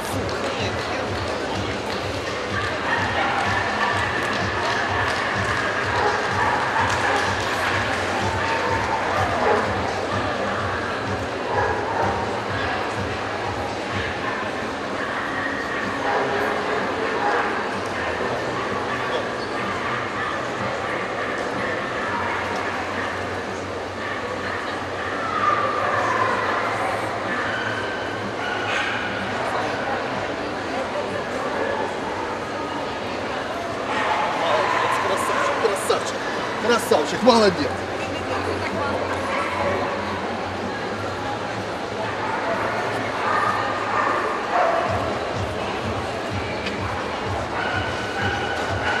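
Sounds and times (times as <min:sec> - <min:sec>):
babble of crowd voices: 0:00.0 - 0:49.0
dogs barking and yipping: 0:02.5 - 0:12.6, 0:13.9 - 0:29.5, 0:47.2 - 0:49.0.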